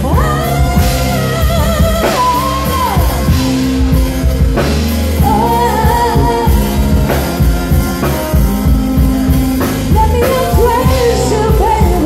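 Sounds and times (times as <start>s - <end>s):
woman singing into a microphone: 0.0s - 4.1s, 5.2s - 9.0s, 9.6s - 12.0s
music with drums and bass: 0.0s - 12.0s.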